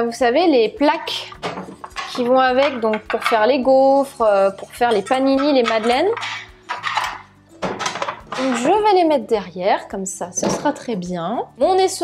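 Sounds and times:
metal plates clattering in drawer: 1.2s - 3.6s, 4.4s - 8.9s.

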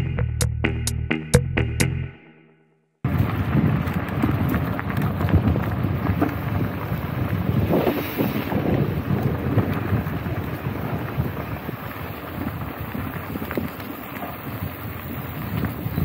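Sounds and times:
bicycle tyres rolling on gravel: 3.1s - 16.0s
wind buffeting microphone: 3.1s - 16.0s.

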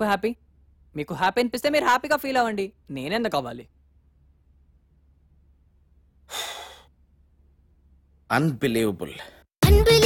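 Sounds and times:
man breathing: 6.2s - 7.0s.

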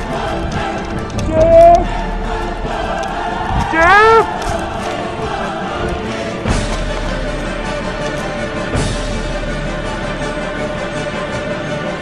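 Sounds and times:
choral chant with held chords: 0.0s - 12.0s.

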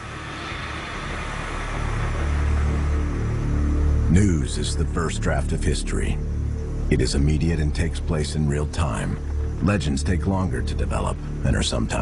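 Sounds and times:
rush of noise: 0.0s - 6.9s.

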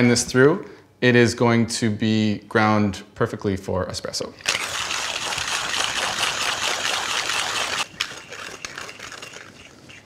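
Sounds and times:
hand grinder crunching coffee beans: 4.4s - 10.0s.

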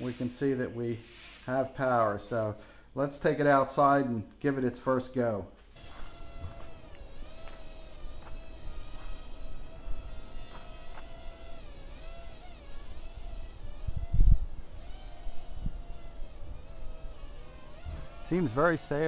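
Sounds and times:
quadcopter propellers buzzing: 5.8s - 19.0s.

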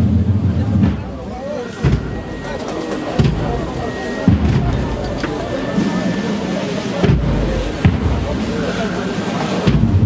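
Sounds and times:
deep bass drum beats: 0.0s - 6.2s, 7.0s - 8.6s, 9.6s - 10.0s
crowd chatter: 0.0s - 10.0s.

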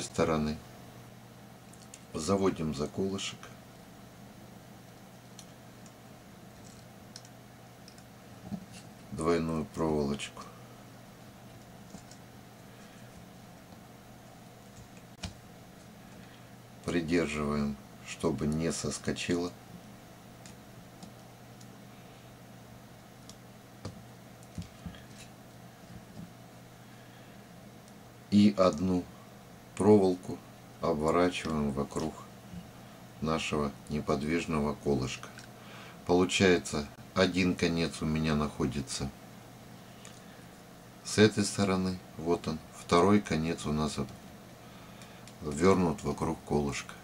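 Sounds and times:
low steady hum: 0.0s - 47.0s.

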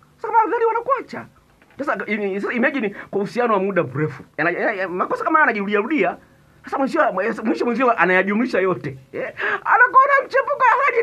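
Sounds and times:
man speaking: 0.2s - 11.0s.

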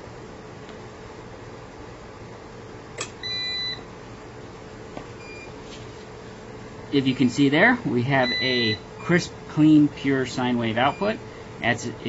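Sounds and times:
steady low hum: 0.0s - 12.0s
ups alarm beep: 3.2s - 3.8s, 5.2s - 5.5s, 8.2s - 9.2s, 10.8s - 11.2s.

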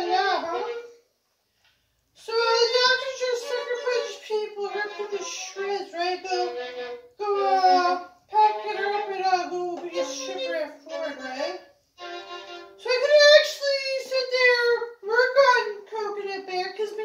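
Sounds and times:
violin slow melody: 0.0s - 1.0s, 2.4s - 13.4s.

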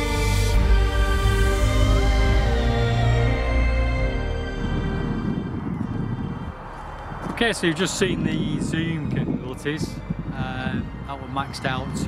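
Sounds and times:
wind buffeting microphone: 1.5s - 12.0s.

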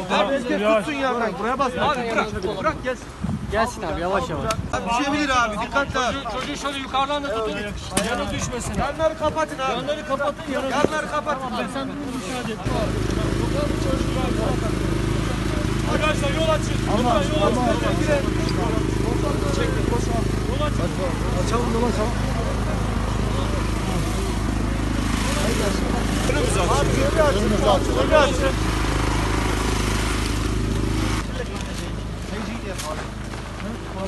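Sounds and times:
crowd talking: 0.0s - 34.0s
low engine hum: 12.6s - 34.0s.

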